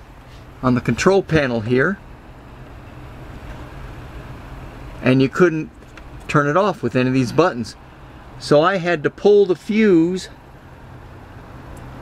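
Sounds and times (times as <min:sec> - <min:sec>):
roof vent fan running: 0:00.0 - 0:12.0.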